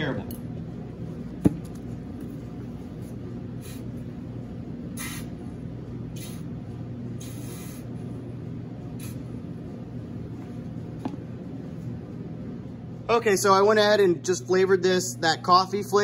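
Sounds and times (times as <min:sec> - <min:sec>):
steady low hum: 0:00.0 - 0:16.0
squeeze bottle squirting: 0:05.0 - 0:05.3, 0:06.2 - 0:06.5, 0:07.2 - 0:07.9.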